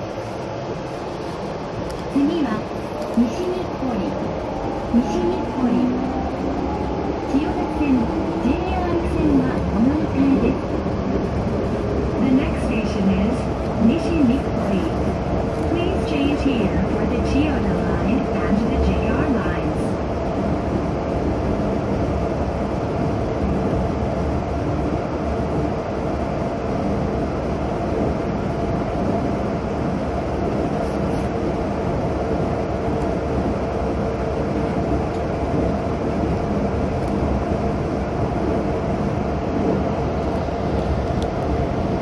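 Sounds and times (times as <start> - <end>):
train cabin rumble: 0.0 - 42.0.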